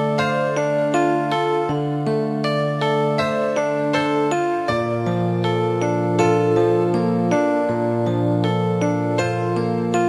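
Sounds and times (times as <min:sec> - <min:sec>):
instrumental melody of held notes: 0:00.0 - 0:10.0.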